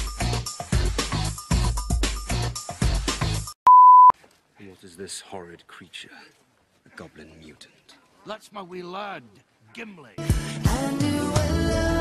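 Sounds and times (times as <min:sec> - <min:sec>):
film-score music with percussive beats: 0:00.0 - 0:03.5
loud steady bleep tone: 0:03.7 - 0:04.1
man speaking: 0:04.6 - 0:10.2.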